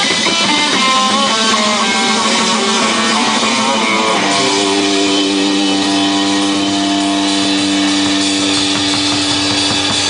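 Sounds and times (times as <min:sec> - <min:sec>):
live rock band sustained chord: 0:00.0 - 0:10.0.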